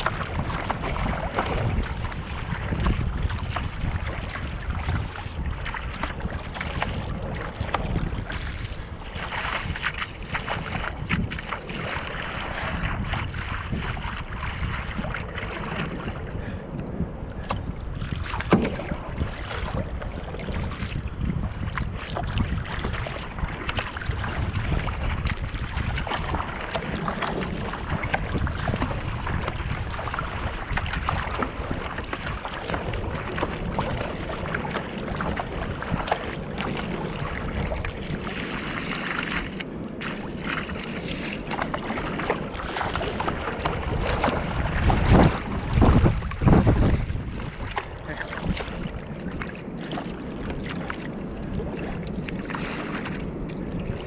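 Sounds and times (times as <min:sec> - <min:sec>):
water splashing against boat bow: 0:00.0 - 0:54.0
wind on microphone: 0:00.0 - 0:54.0.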